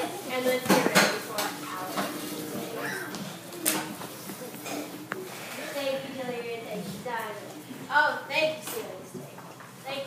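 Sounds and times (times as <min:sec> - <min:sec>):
children talking: 0:00.0 - 0:09.2.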